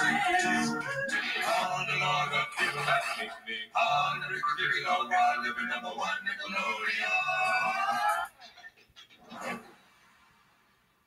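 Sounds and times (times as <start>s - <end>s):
television jingle chord: 0.0s - 8.2s.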